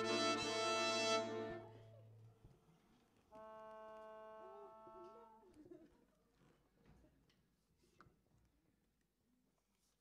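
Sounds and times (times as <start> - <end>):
accordion and violin music: 0.0 - 1.9.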